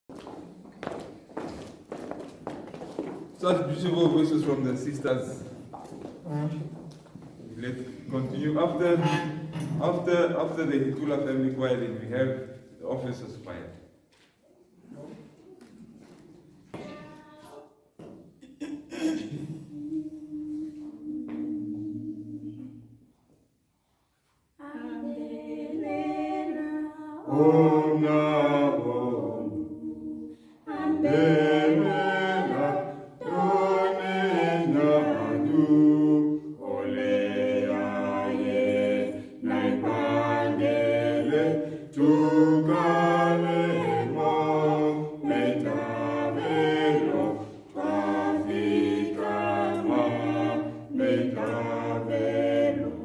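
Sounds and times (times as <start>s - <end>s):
footsteps in a hall: 0.1s - 8.7s, 14.0s - 18.6s
small choir singing in harmony: 7.5s - 13.1s, 18.6s - 53.0s.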